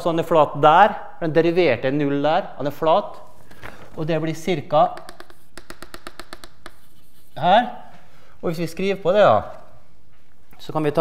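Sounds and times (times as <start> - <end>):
chalk tapping on a blackboard: 4.5 - 8.0.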